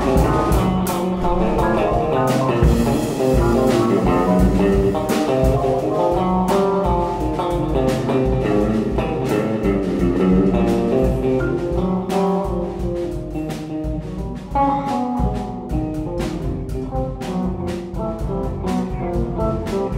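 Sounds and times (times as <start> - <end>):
electric guitar with effects: 0.0 - 19.9
irregular drum and cymbal hits: 0.0 - 19.9.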